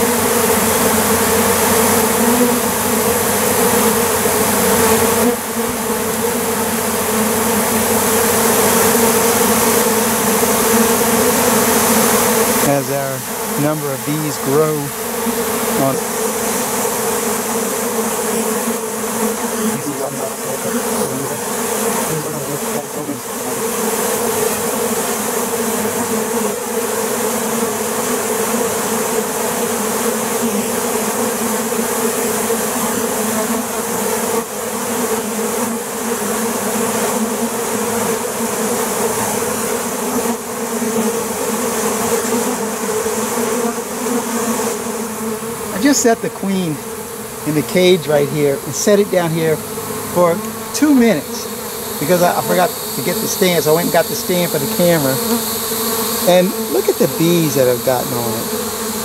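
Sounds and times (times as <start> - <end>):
honeybees buzzing: 0.0 - 59.0.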